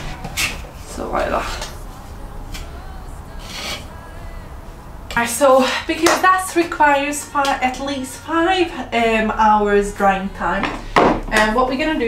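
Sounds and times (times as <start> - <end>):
putty knife scraping filler: 3.4 - 3.9.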